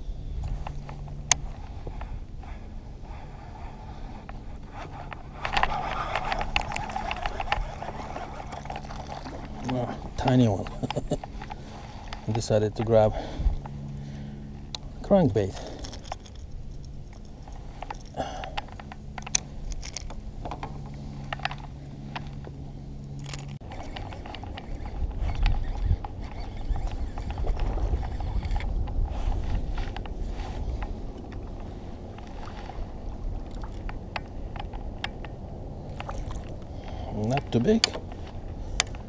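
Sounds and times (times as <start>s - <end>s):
wind on microphone: 0.0s - 12.4s, 23.6s - 37.4s
clicks and knocks of reel and hull: 0.4s - 14.1s, 14.7s - 39.0s
fishing reel whirring: 3.1s - 14.8s, 23.1s - 38.0s.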